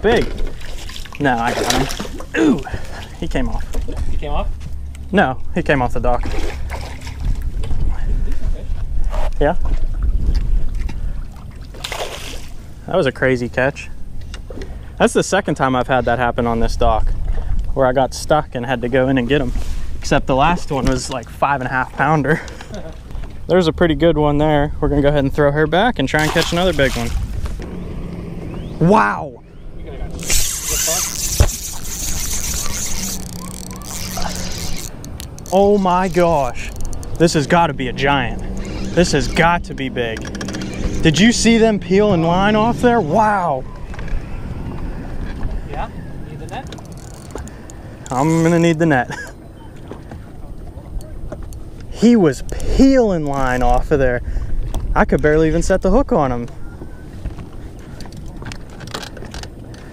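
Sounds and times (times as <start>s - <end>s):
fishing reel drag buzzing: 30.0s - 37.2s, 38.4s - 39.6s, 46.8s - 48.7s.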